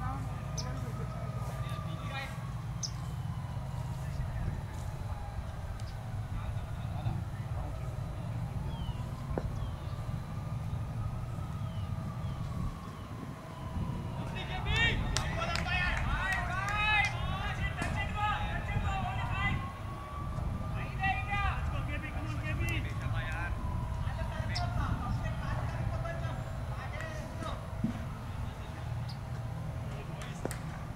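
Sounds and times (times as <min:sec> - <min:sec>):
players calling out: 0:14.0 - 0:30.7.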